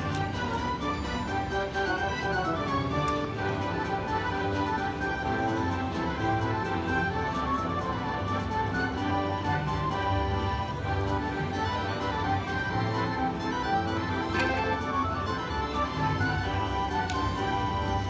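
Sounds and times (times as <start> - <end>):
slot machine win music: 14.2 - 15.4.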